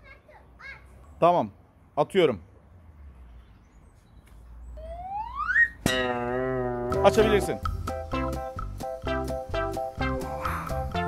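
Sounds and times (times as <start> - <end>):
rising whistle glide: 4.9 - 5.8
twangy plucked string note: 5.8 - 7.8.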